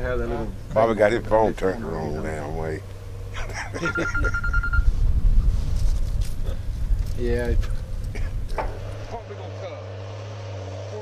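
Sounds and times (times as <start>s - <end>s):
low rumble: 0.0s - 9.2s
electronic beep: 3.9s - 4.9s.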